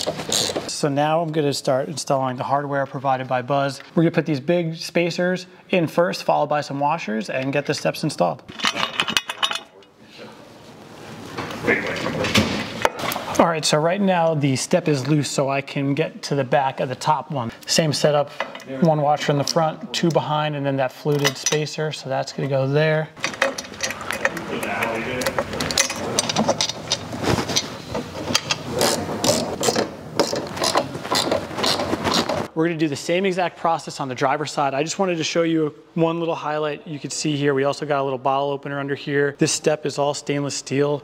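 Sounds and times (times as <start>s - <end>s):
metal hardware clinking: 8.5s - 9.9s, 21.1s - 21.8s, 23.2s - 31.4s.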